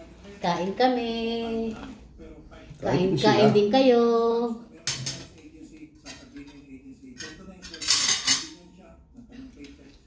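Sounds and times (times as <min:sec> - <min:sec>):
cutlery clinking on plates: 0:04.8 - 0:08.7.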